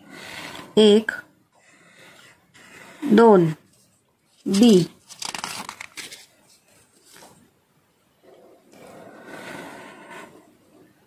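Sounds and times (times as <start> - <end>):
paper rustle: 3.7 - 7.4.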